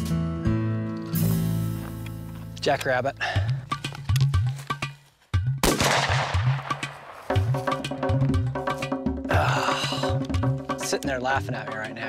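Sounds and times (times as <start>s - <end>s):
background music with drum beat: 3.2s - 12.0s
shotgun shot: 5.6s - 7.4s.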